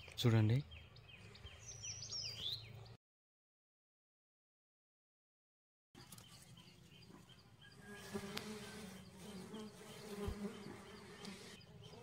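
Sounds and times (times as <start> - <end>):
bees buzzing: 7.8 - 12.0.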